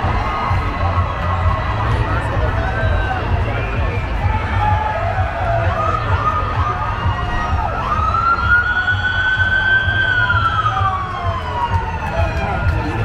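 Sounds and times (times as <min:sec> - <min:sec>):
ambulance siren wailing: 0:00.0 - 0:13.0
crowd chatter: 0:00.0 - 0:13.0.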